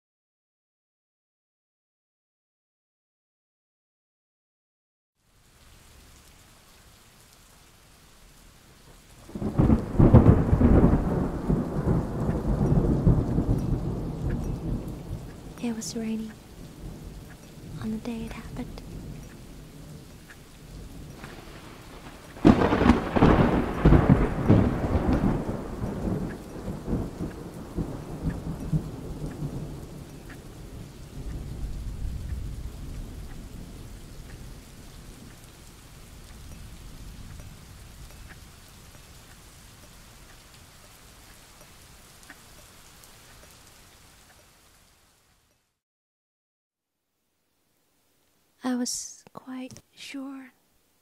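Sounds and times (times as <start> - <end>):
steady rain: 5.2 - 45.8, 47.1 - 51.0
thunder rumbling: 8.9 - 40.5
loud thunderclap: 9.3 - 15.6, 20.8 - 35.4.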